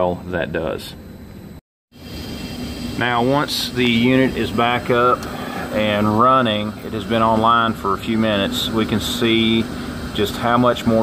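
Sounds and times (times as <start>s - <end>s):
hvac unit running: 0.0s - 11.0s.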